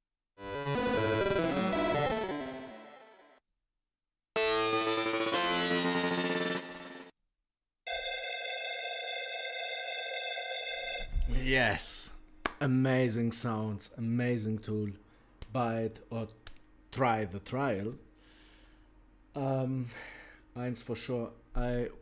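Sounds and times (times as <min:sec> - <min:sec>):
synthesizer held tones: 0:00.4 - 0:03.3
synthesizer gliding pitches: 0:00.4 - 0:03.4, 0:04.4 - 0:07.1
synthesizer sustained chord: 0:04.4 - 0:07.1.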